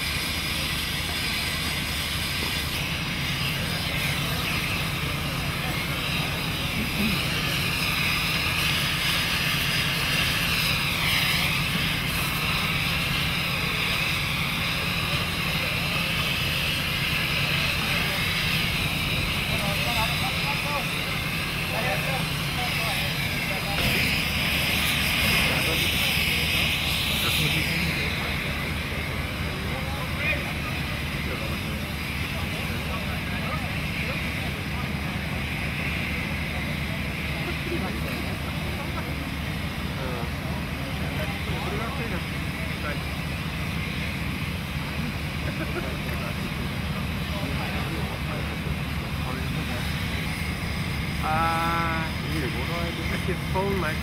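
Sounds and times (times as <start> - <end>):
faint voices: 0.0 - 54.0
hiss: 0.0 - 54.0
motor running with low drone: 0.0 - 54.0.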